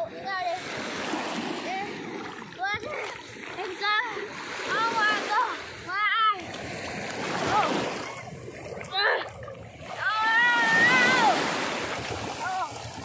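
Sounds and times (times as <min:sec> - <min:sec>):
small waves breaking: 0:00.0 - 0:13.0
water splashing: 0:00.0 - 0:13.0
child calling out: 0:10.0 - 0:11.5.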